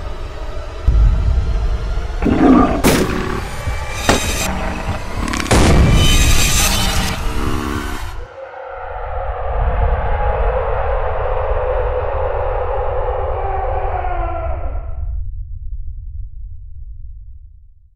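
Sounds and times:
loud cinematic hit: 0.9 - 8.0.

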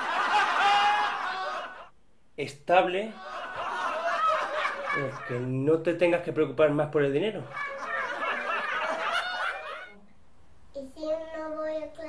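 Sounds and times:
high-pitched laughter: 7.5 - 9.9.

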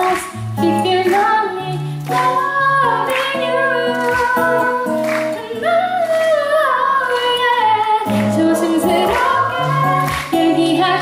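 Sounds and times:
acoustic guitar: 0.0 - 11.0
woman singing: 0.0 - 11.0.

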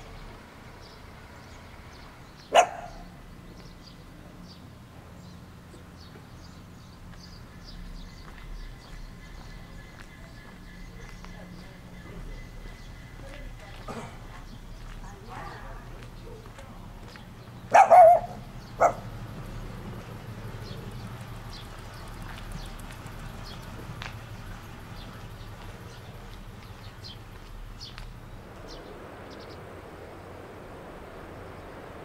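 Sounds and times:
dog barking: 2.5 - 3.2, 17.7 - 19.2
footsteps on asphalt: 5.7 - 29.5.

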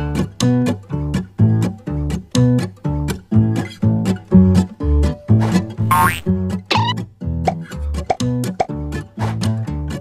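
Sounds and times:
light plucked background music: 3.1 - 8.7
rising plop sound effects: 5.9 - 6.3.

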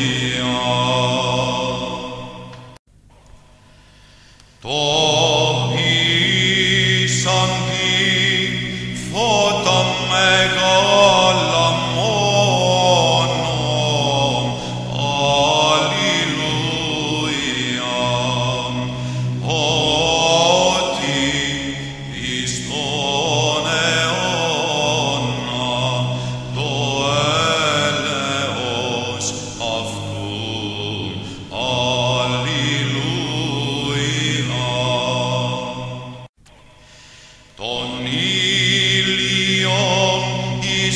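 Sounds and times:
church chant singing: 0.0 - 2.8, 4.6 - 36.8, 37.4 - 40.9
sustained low drone: 4.6 - 36.3.

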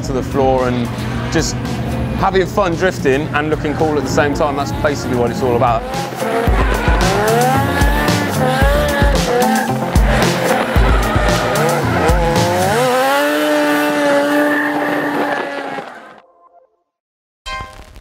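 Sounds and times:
car engine revving: 0.2 - 16.2
tyre squeal: 5.2 - 16.2
music with heavy beat: 5.8 - 13.2.

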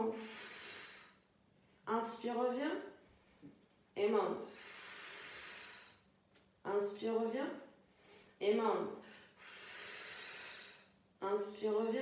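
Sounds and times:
woman exhaling through the mouth: 0.0 - 1.2, 4.6 - 6.0.

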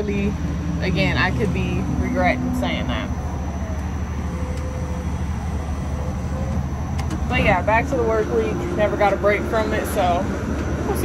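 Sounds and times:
machinery hum and rumble: 0.0 - 11.0
faint steady tone: 0.1 - 10.2.

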